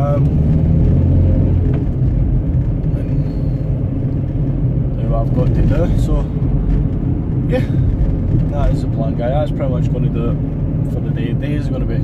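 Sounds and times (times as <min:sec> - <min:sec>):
van engine and road rumble: 0:00.0 - 0:12.0.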